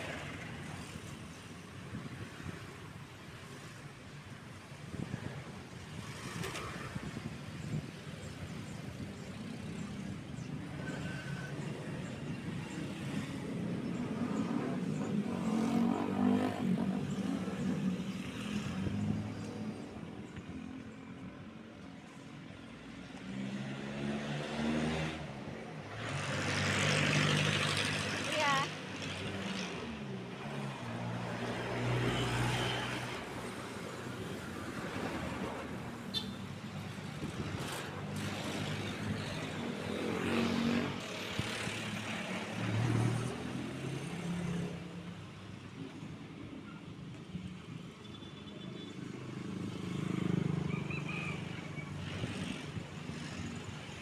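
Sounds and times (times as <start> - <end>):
vehicles driving past: 0.0 - 54.0.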